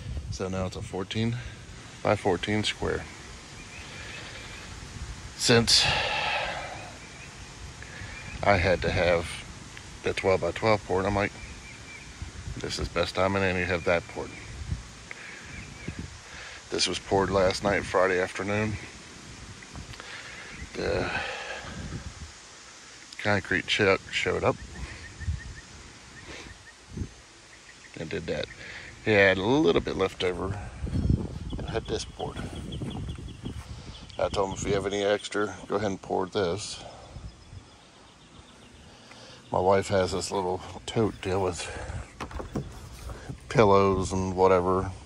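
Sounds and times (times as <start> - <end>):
faint outdoor background: 0.0 - 45.0
man speaking: 39.5 - 42.6
low thump: 42.2 - 43.5.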